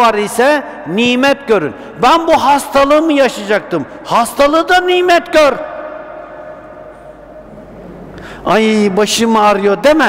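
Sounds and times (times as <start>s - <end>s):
man speaking: 0.0s - 5.7s, 8.4s - 10.0s.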